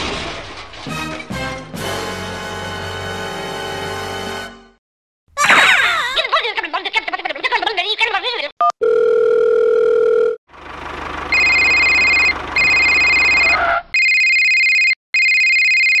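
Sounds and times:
dial tone beep: 8.6s - 10.4s, 11.4s - 16.0s
electronic phone ringtone: 8.8s - 10.4s, 11.3s - 16.0s.

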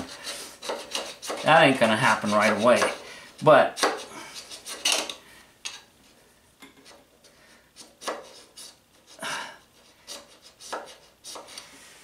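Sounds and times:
file rasping on metal: 0.0s - 5.2s, 7.8s - 11.6s.

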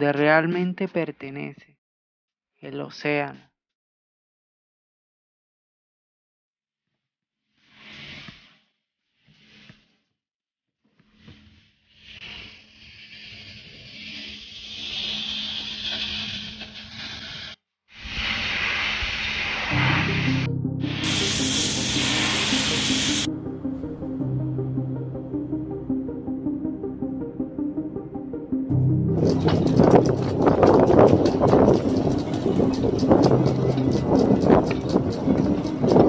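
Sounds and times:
short bursts of hissing: 14.2s - 23.3s
rushing hiss: 18.0s - 23.3s
music with steady low tone: 19.8s - 36.0s.

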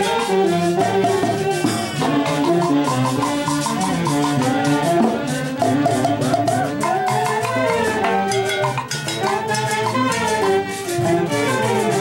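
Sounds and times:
brass band playing dance tune: 0.0s - 12.0s
drums keeping steady beat: 0.0s - 12.0s.

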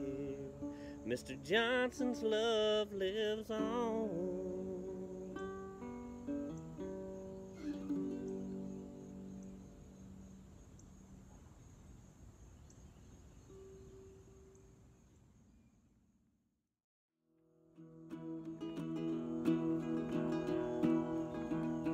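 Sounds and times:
small acoustic string instrument picked: 3.5s - 9.6s, 17.6s - 21.9s.

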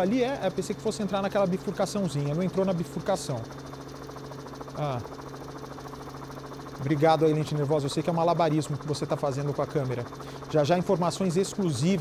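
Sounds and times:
helicopter engine and rotor: 0.0s - 12.0s.

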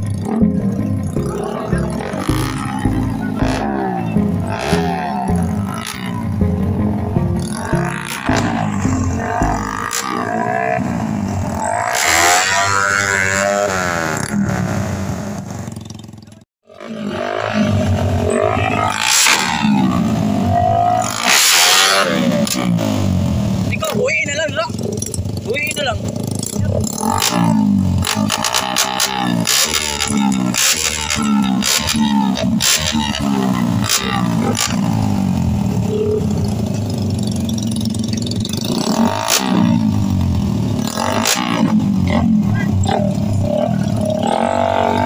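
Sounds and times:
background music: 0.0s - 11.4s
motorcycles revving: 0.0s - 45.0s.

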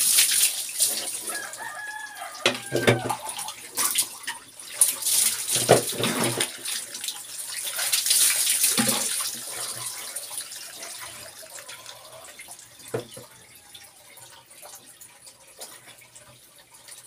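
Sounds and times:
water splashing over person: 2.6s - 10.0s.

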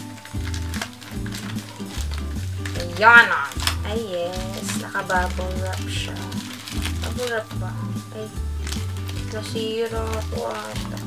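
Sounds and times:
background music: 0.0s - 11.0s
plastic packaging crinkling: 0.0s - 11.0s.

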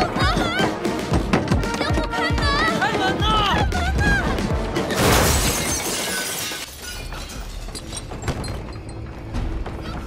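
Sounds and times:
glass window panes shattering: 4.9s - 8.4s
glass shards tinkling: 5.2s - 8.6s.

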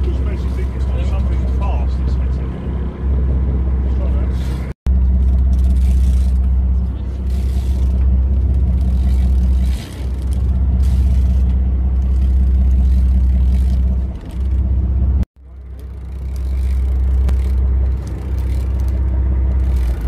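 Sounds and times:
boat engine humming: 0.0s - 20.0s.

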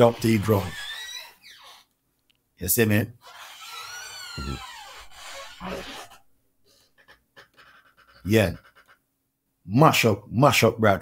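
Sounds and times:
man laughing breathily: 5.7s - 9.0s.

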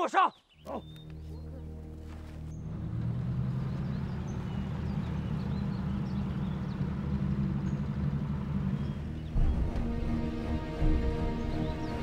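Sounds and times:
car engine humming: 1.0s - 12.0s.

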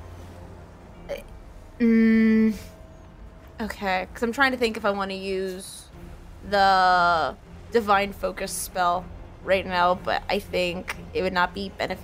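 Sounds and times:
person humming mm: 1.1s - 2.7s.

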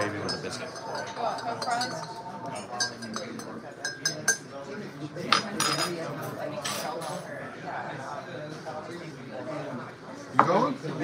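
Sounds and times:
crockery and glassware clinking: 0.0s - 7.3s.

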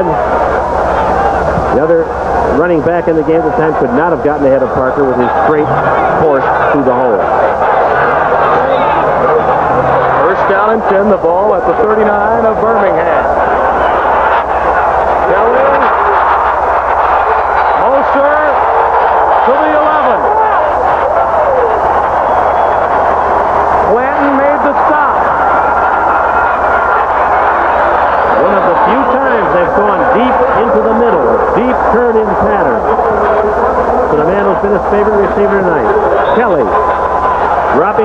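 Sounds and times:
crowd shouting and cheering: 0.0s - 38.0s.

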